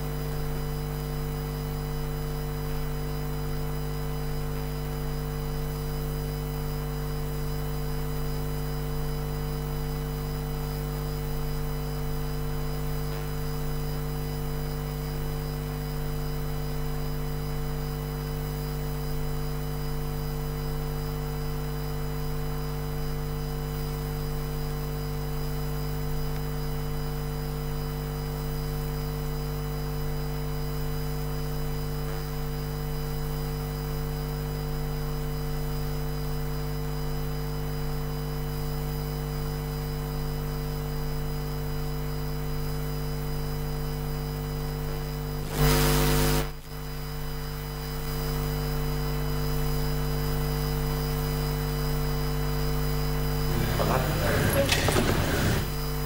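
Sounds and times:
electrical mains hum: 0.0s - 56.0s
loud burst of noise: 45.4s - 46.6s, 53.5s - 55.8s.

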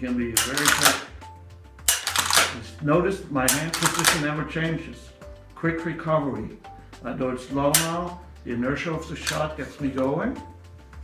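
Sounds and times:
rifle action clicking and clattering: 0.4s - 1.1s, 1.9s - 2.6s, 3.5s - 4.2s, 9.2s - 9.4s.

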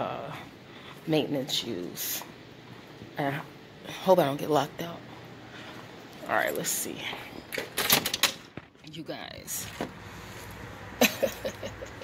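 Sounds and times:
door unlatching and opening: 7.5s - 8.7s.

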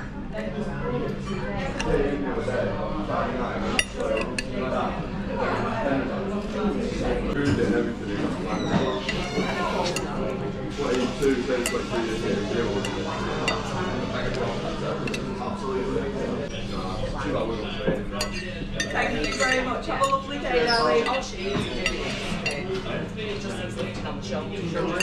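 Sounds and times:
cutlery scraping on plate: 20.6s - 22.6s.

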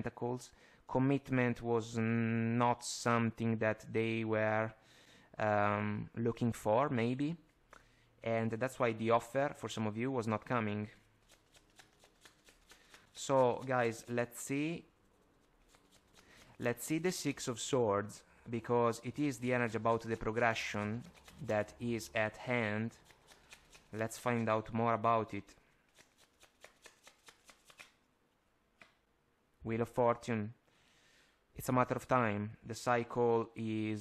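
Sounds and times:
cards being shuffled: 11.2s - 14.2s, 15.2s - 17.3s, 19.0s - 24.5s, 25.9s - 28.0s.

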